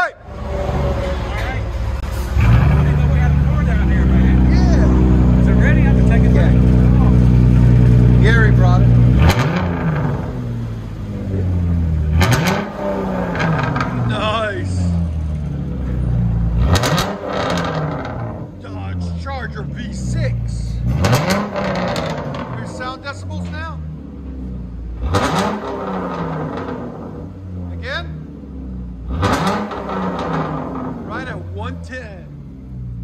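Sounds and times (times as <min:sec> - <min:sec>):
car engine running: 0:00.2 - 0:33.0.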